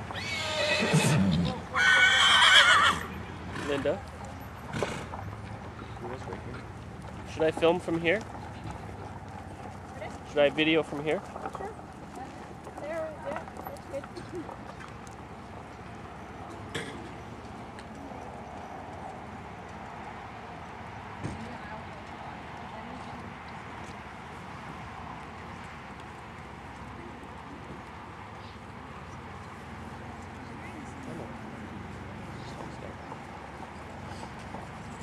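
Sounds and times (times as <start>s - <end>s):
outdoor background hiss: 0.0s - 5.8s.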